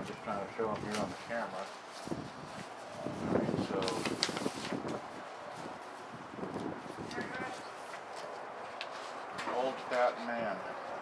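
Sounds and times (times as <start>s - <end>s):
wind noise on microphone: 2.0s - 7.8s.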